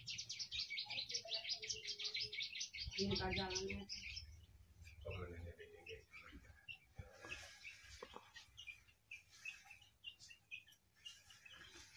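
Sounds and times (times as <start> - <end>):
songbird chirping faintly: 0.0 - 11.9.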